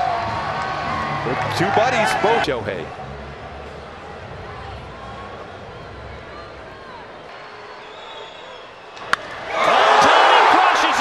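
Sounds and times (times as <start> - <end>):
faint crowd murmur: 2.7 - 8.9.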